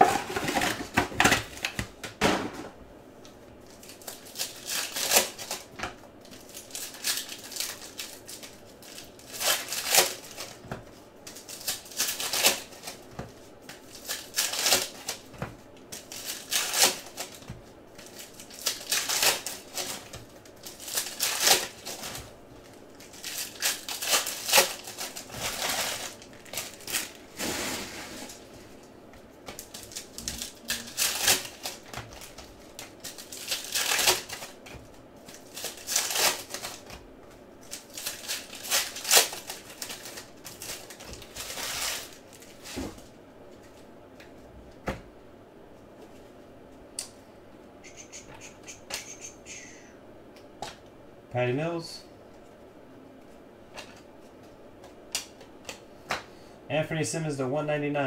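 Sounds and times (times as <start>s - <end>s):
foil wrappers crinkling and tearing: 3.7s - 28.8s, 29.4s - 37.0s, 37.6s - 43.0s.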